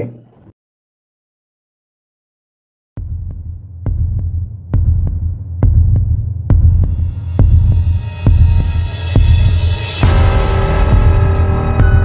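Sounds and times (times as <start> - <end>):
deep bass hum: 3.0 - 12.0
heavy heartbeat-like pulse: 3.0 - 12.0.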